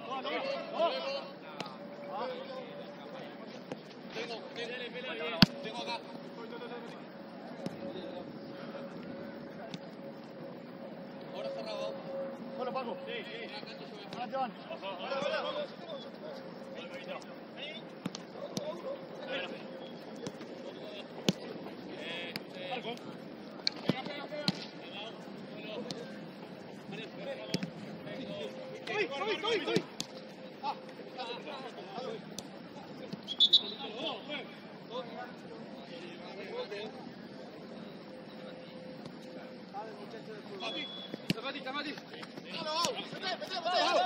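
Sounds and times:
players shouting: 0:40.4 - 0:44.0
ball kick thuds: 0:40.8 - 0:43.2.

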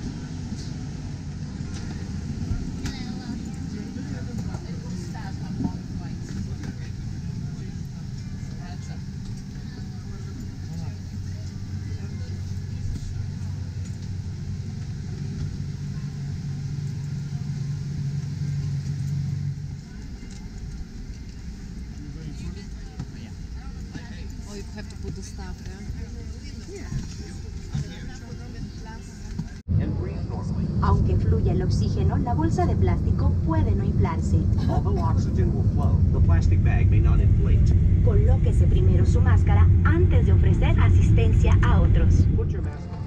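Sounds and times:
low droning tones: 0:00.0 - 0:26.6, 0:27.2 - 0:43.0
aircraft cabin hum: 0:00.0 - 0:43.0
indistinct passenger chatter: 0:00.0 - 0:43.0.

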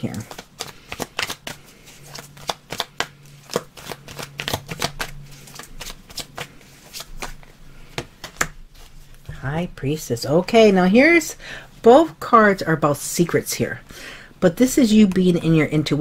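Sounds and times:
cards being shuffled: 0:00.0 - 0:09.3.

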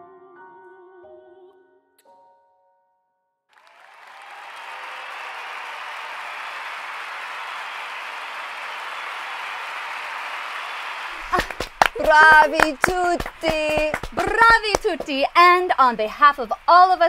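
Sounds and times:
audience applause: 0:03.5 - 0:17.0.

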